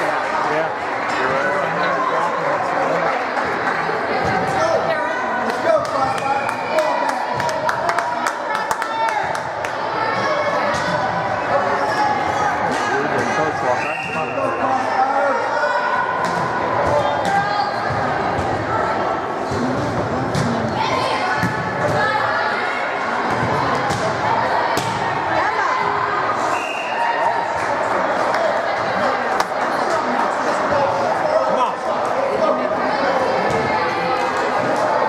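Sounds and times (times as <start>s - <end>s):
voices calling and chattering: 0.0s - 35.0s.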